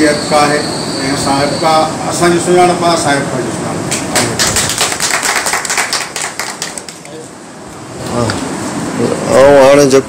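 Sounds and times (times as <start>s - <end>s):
people clapping: 3.9s - 7.3s.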